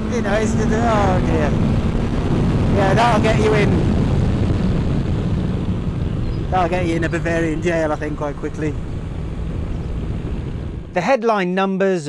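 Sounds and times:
wind rush while riding: 0:00.0 - 0:11.0.

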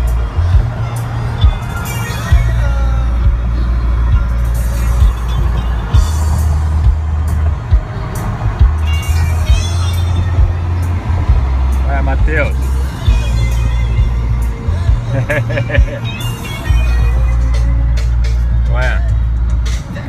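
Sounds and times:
deep bass line: 0:00.0 - 0:16.1, 0:16.7 - 0:20.0
person singing: 0:08.7 - 0:11.3, 0:12.5 - 0:20.0.

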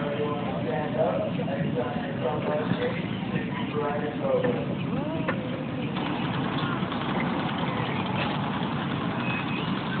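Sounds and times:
low engine running: 0:00.0 - 0:10.0.

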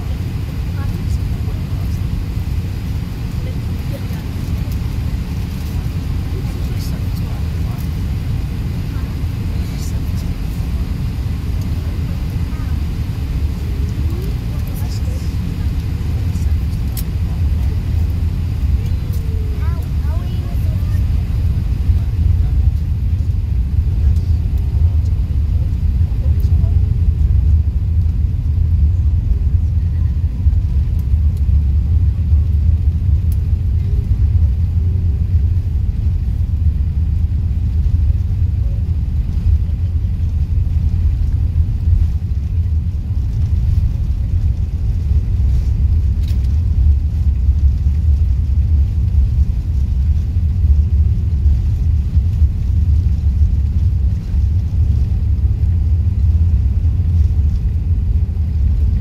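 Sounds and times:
aircraft cabin rumble: 0:00.0 - 0:59.0.

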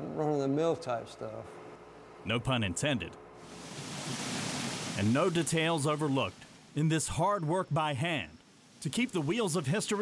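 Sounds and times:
falling water rushing: 0:03.4 - 0:10.0.

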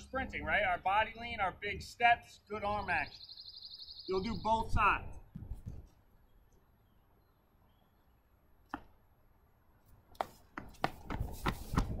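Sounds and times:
running shoes thudding on asphalt: 0:05.2 - 0:06.0, 0:10.0 - 0:12.0.

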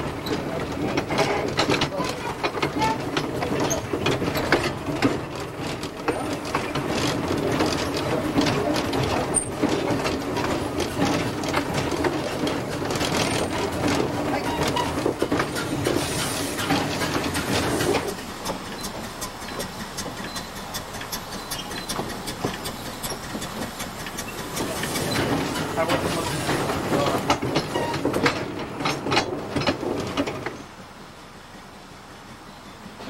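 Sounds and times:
steam locomotive running: 0:00.0 - 0:33.0
wheels clicking on rail: 0:00.0 - 0:33.0.

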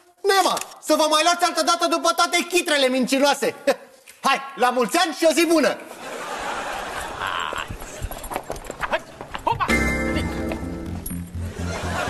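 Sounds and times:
hurried footsteps on wooden floor: 0:07.6 - 0:09.5.

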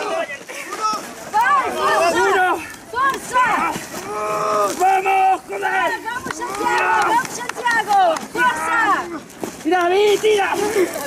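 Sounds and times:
people shouting encouragement: 0:00.0 - 0:11.0.

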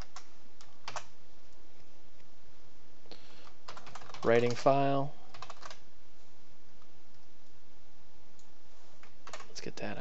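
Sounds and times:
keyboard typing: 0:00.0 - 0:01.1, 0:03.4 - 0:04.6, 0:05.3 - 0:05.8, 0:09.2 - 0:09.6.

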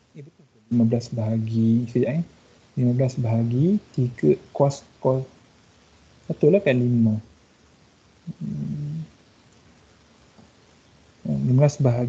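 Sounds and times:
man humming: 0:00.1 - 0:02.2, 0:08.3 - 0:09.1, 0:11.3 - 0:12.0.

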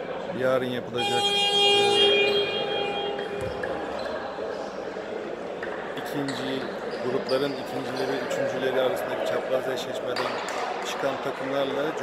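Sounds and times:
sports hall noise: 0:00.0 - 0:12.0
scoreboard horn tone: 0:01.0 - 0:04.1.

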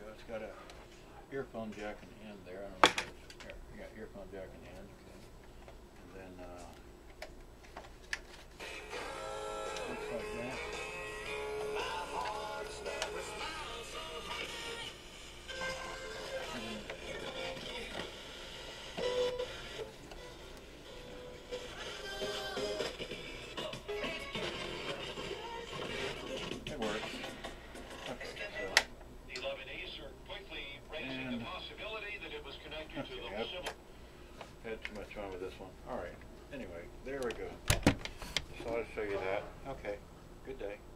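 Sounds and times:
music with vocals from small speakers: 0:08.6 - 0:28.9.

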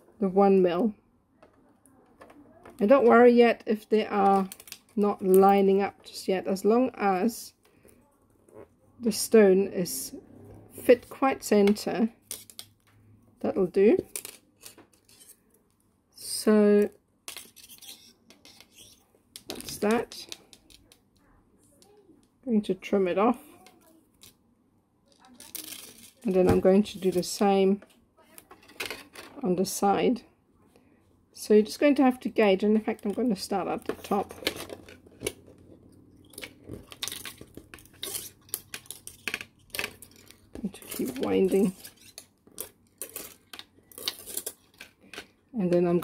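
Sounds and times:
wire clicking and scraping: 0:14.0 - 0:15.8, 0:32.8 - 0:46.0.

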